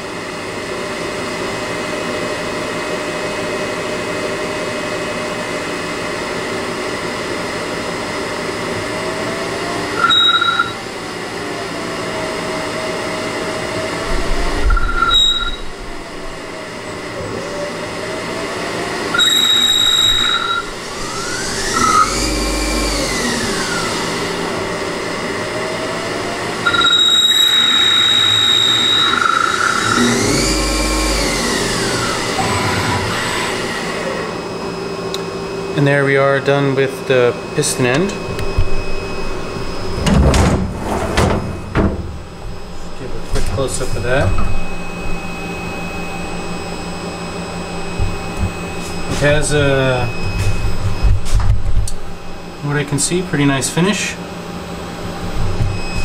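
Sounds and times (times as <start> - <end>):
lathe whine rising and falling: 0.0 - 40.3, 40.9 - 56.0
high-pitched cutting tone: 26.6 - 33.2.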